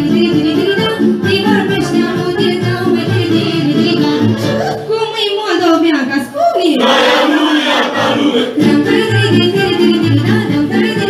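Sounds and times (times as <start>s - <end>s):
instrumental backing with bass line: 0.0s - 4.8s
girl singing into a microphone: 0.0s - 5.3s, 8.6s - 11.0s.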